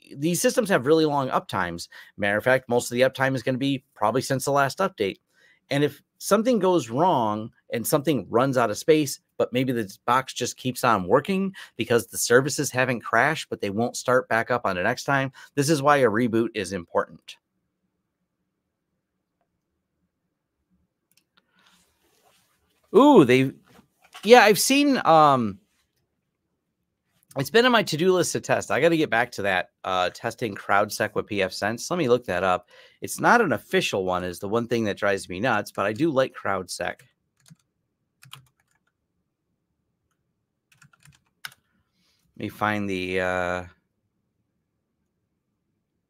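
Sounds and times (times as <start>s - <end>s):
typing on computer keyboard: 37.4s - 39.0s, 40.7s - 41.6s.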